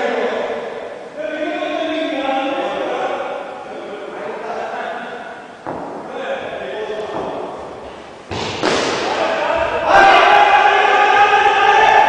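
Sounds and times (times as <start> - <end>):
indoor sports hall noise: 0.0 - 12.0
thud: 5.6 - 6.2, 7.1 - 9.6.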